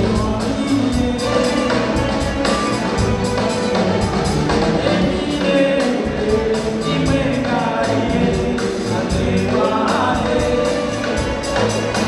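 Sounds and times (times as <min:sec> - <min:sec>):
quick percussion beat: 0:00.0 - 0:12.0
voices singing together: 0:00.0 - 0:12.0.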